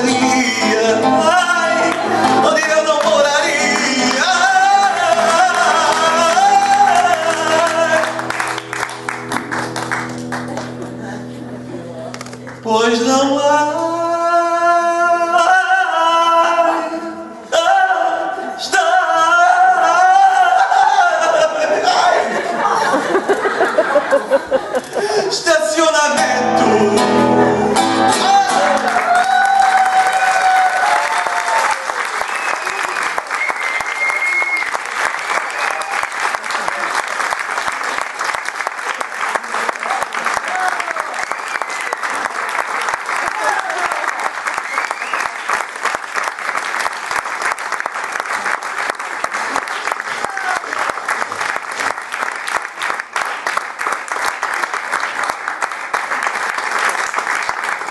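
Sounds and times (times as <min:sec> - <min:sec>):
audience applauding: 0:00.0 - 0:12.7, 0:27.9 - 0:57.9.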